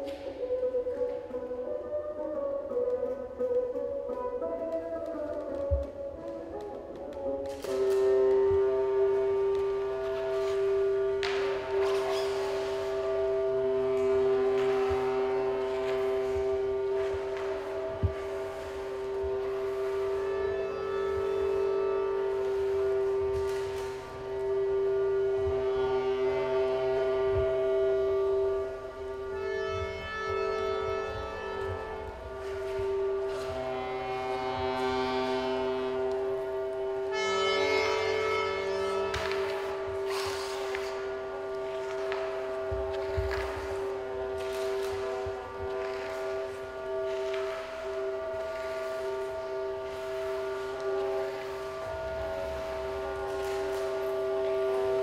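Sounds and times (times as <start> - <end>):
drone music sustained tones: 0.0 - 55.0
buzzy chord: 6.0 - 55.0.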